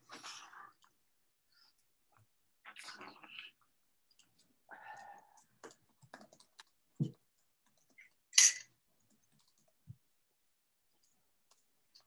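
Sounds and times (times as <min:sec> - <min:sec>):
keyboard and mouse clicking: 0:04.1 - 0:08.2, 0:09.0 - 0:09.8.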